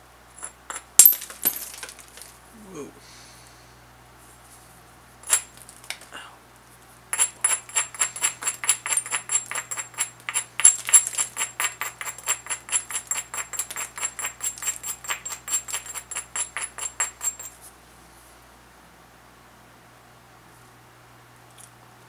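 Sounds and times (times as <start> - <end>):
stone abrading a stone edge: 0.4 - 2.3, 7.2 - 17.5.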